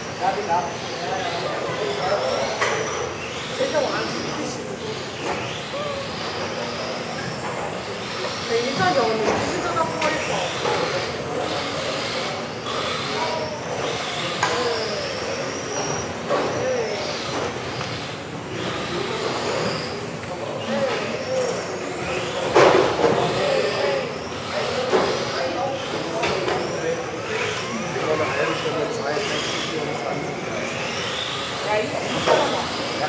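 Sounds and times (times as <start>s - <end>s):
electric toy car motors whining: 0.0s - 33.0s.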